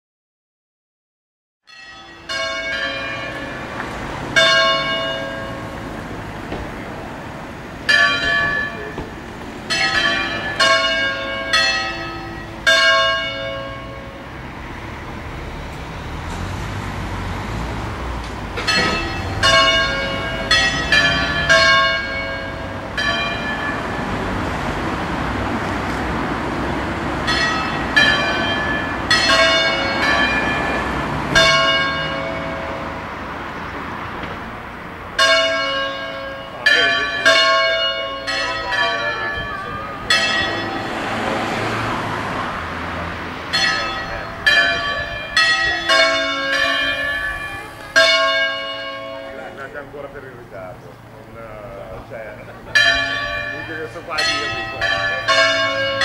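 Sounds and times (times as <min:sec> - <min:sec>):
church bells ringing: 0:01.7 - 0:16.3, 0:17.2 - 0:34.1, 0:34.9 - 0:56.0.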